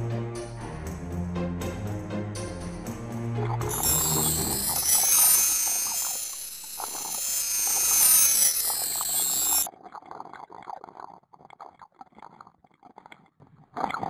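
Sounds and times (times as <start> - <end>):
shimmering chime sparkle effect: 3.7 - 9.7.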